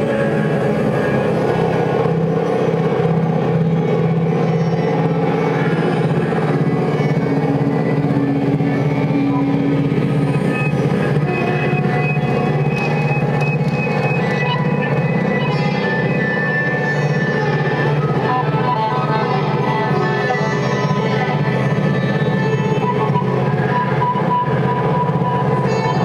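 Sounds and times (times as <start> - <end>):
bowed violin drone music: 0.0 - 26.0.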